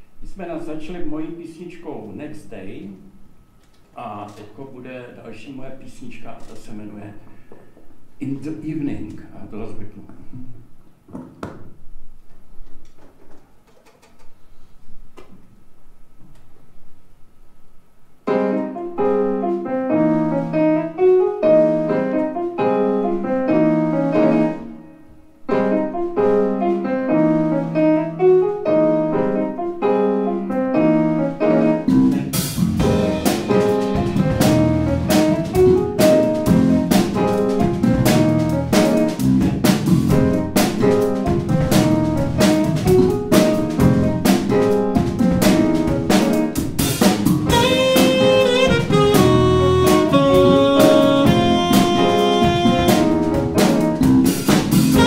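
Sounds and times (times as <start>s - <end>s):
jazz piano chords: 18.2s - 55.0s
drum kit steady beat: 31.9s - 55.0s.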